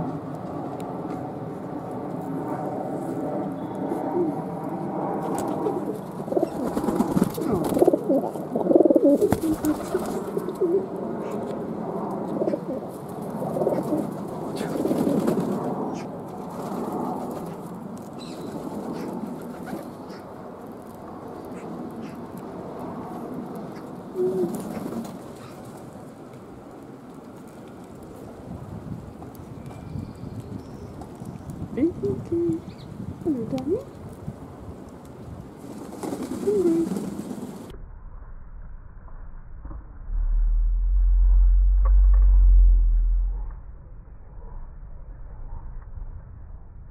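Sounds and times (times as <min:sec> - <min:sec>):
pigeons cooing: 0:05.2 - 0:11.5, 0:12.2 - 0:16.1, 0:23.6 - 0:25.7, 0:36.0 - 0:37.6.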